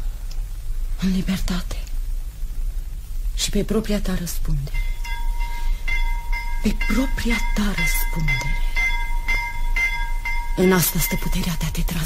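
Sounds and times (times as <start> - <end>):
steady high-pitched ship signal tone: 4.6 - 12.0.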